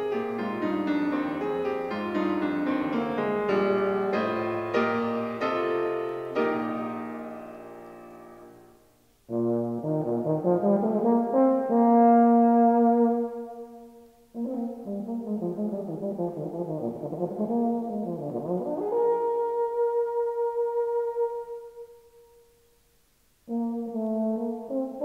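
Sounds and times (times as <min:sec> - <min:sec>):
piano chord: 0:00.0 - 0:09.0
solo euphonium playing: 0:09.3 - 0:22.2, 0:23.5 - 0:25.0.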